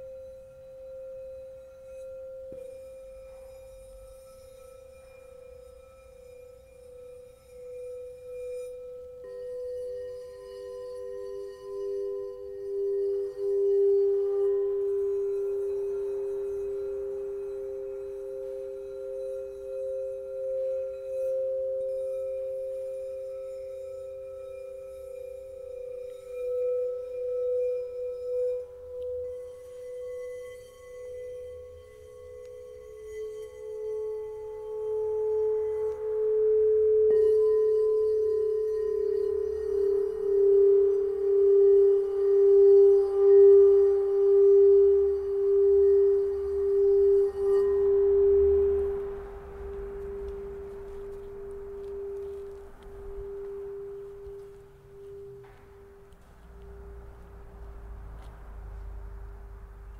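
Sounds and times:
singing bowls ringing: 0.0 - 59.9.

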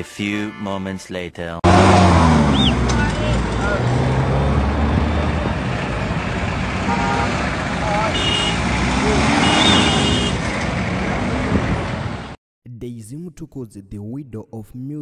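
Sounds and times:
indistinct voices: 0.0 - 5.7, 7.7 - 9.8
passing traffic rush: 1.6 - 12.4
vehicle engine droning: 1.6 - 12.4.

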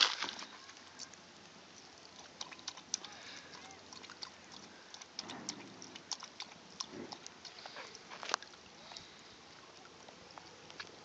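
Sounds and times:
dog splashing in shallow water: 0.0 - 11.0.

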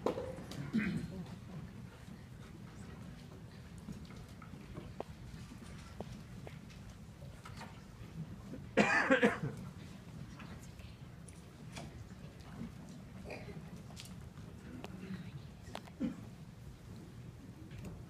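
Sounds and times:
low background hum: 0.0 - 18.0
loud cough: 8.8 - 9.6.

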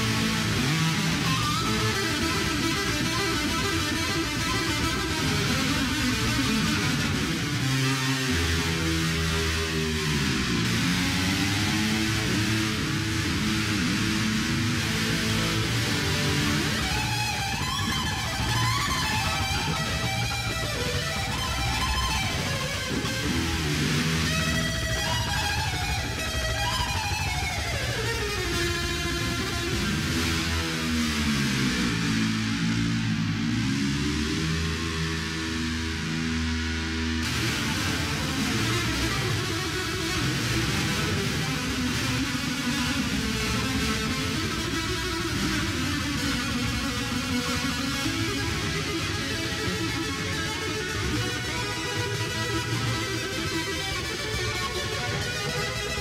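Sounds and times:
heavy metal electric guitar: 0.0 - 56.0.

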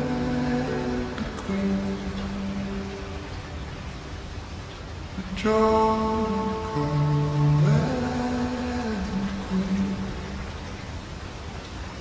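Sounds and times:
slowed reverb-heavy pop song: 0.0 - 3.7, 5.2 - 10.6
rain hiss: 0.0 - 12.0.

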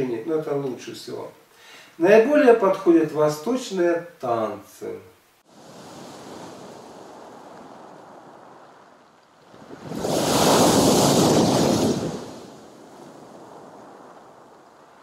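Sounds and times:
surf on shingle beach: 5.4 - 15.0
wave crashing against concrete: 5.7 - 14.0.

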